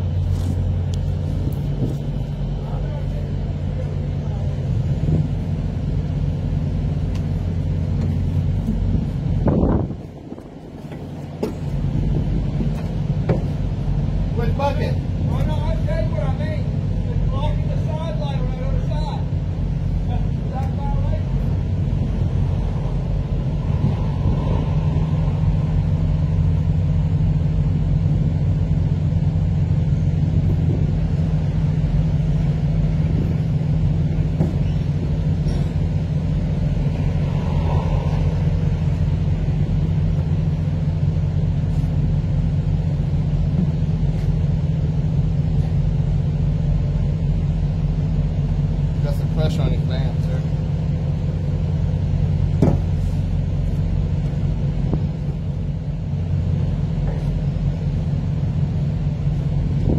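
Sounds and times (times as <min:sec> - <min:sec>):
diesel truck engine idling: 0:00.0 - 0:59.9.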